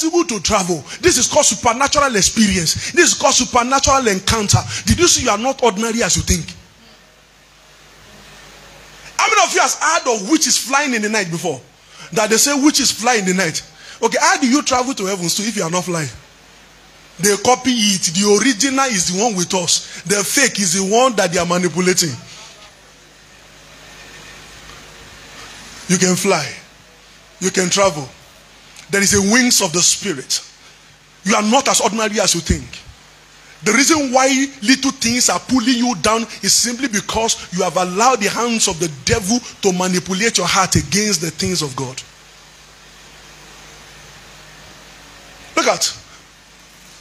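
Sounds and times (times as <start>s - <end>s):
man's amplified speech: 0.0s - 6.6s, 9.2s - 16.2s, 17.2s - 22.5s, 25.9s - 26.7s, 27.4s - 28.2s, 28.9s - 30.5s, 31.2s - 32.9s, 33.6s - 42.1s, 45.6s - 46.1s
background hiss: 0.0s - 47.0s
faint low hum: 0.0s - 47.0s.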